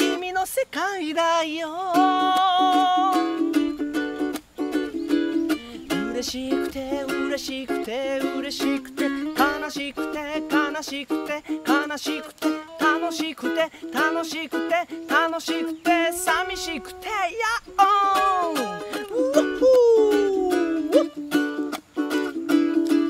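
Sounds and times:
man singing: 0.0 - 4.0, 5.0 - 21.2
ukulele strumming: 0.0 - 23.0.

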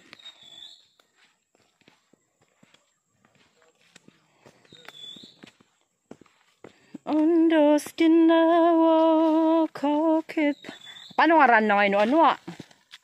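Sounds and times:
footsteps on dry leaves: 0.0 - 13.0.

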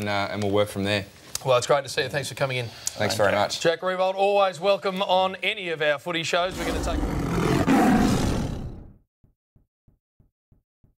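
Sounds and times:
tiger roaring: 6.5 - 9.0.

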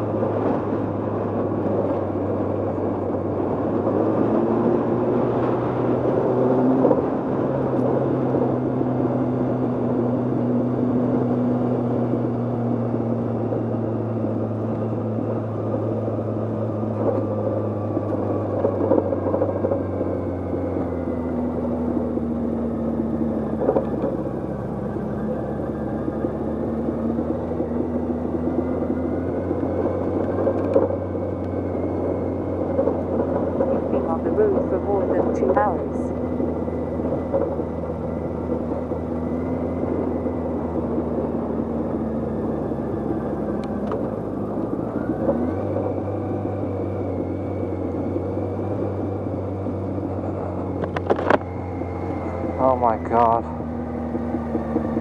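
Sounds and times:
motorcycle engine running: 0.0 - 55.0
wind and road noise: 0.0 - 55.0.

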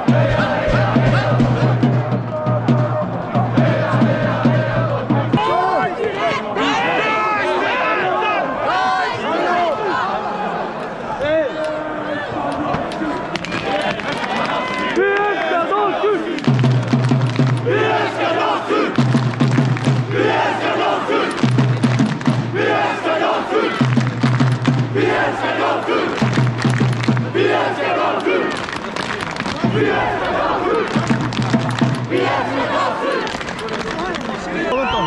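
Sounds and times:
crowd chanting: 0.0 - 35.0
crowd shouting: 0.0 - 35.0
hand-clapping: 12.5 - 15.4, 16.3 - 17.7, 19.0 - 20.1, 21.2 - 22.4, 23.8 - 24.8, 26.1 - 27.3, 28.0 - 34.4.

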